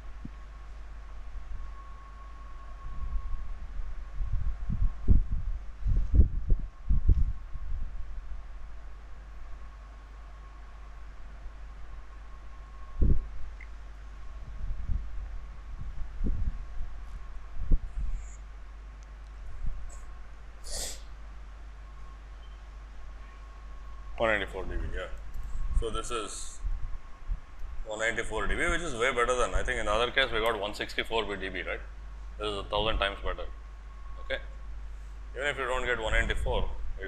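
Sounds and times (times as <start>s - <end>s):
steady low hum: 0.0s - 37.0s
irregular low thumps: 2.9s - 8.2s, 13.0s - 18.4s
faint high tone: 32.5s - 34.6s.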